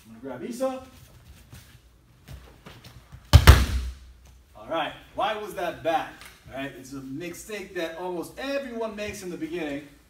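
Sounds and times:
bare feet shuffling on a mat: 0.6s - 4.6s.

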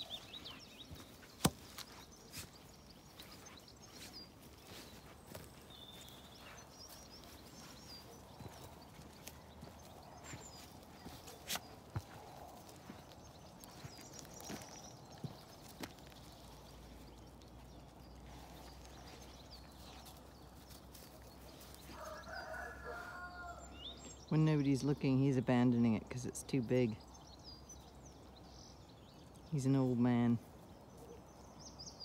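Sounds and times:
distant birdsong: 0.0s - 32.0s
distant farm animal calling: 21.6s - 24.3s.

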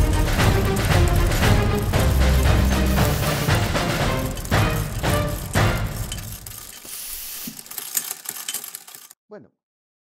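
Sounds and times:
clockwork gears ratcheting: 0.0s - 9.2s.

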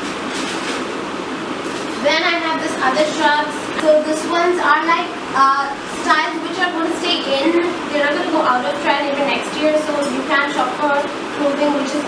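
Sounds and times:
steady rushing room noise: 0.0s - 12.0s.

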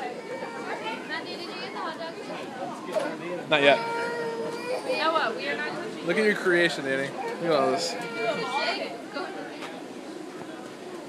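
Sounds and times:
people talking: 0.0s - 4.0s, 7.4s - 11.0s.

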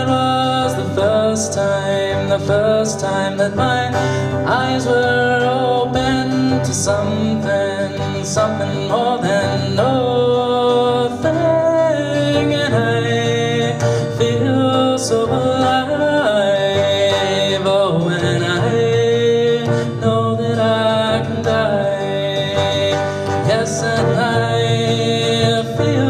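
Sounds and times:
acoustic guitar strumming: 0.0s - 26.0s
man singing: 0.0s - 26.0s.

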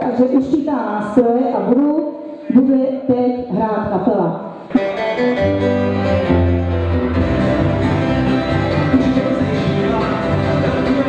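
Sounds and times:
guitars with sustained notes: 4.7s - 11.0s
bass line: 4.8s - 11.0s.

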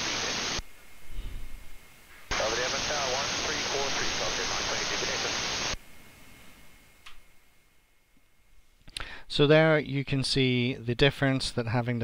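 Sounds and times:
radio voice: 0.0s - 0.6s, 2.3s - 5.8s
radio hiss and static: 0.0s - 1.5s, 2.1s - 5.8s.

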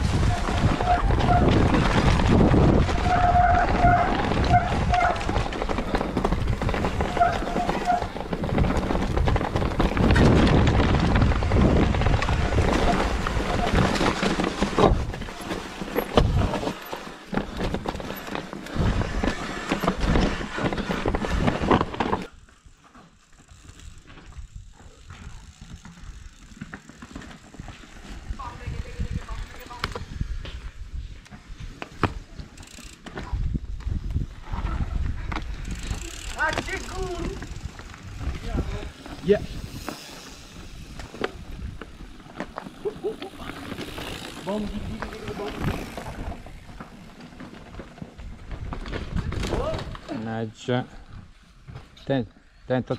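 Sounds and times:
wind on microphone: 0.0s - 15.3s, 28.2s - 31.7s, 33.2s - 36.1s, 36.8s - 42.1s
bike rattling over rocks: 0.0s - 30.3s, 31.5s - 52.2s.

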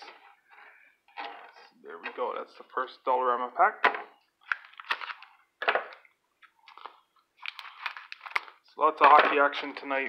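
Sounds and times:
cellophane wrapper crackling: 4.4s - 5.4s, 6.5s - 8.7s.

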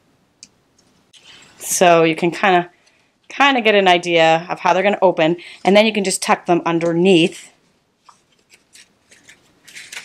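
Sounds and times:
paper rustling and sliding: 8.0s - 10.0s.

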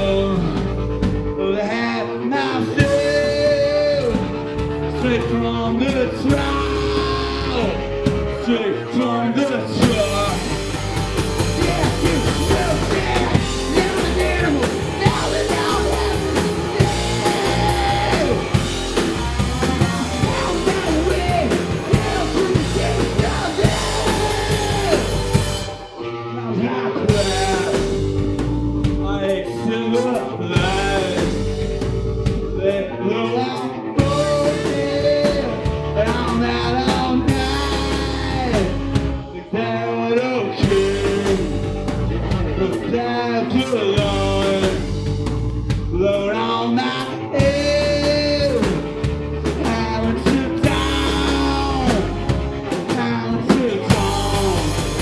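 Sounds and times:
live punk rock band playing: 0.0s - 55.0s.

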